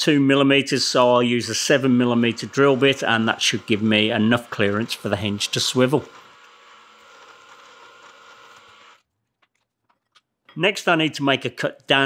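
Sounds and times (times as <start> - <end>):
drill press running: 1.4 - 9.0.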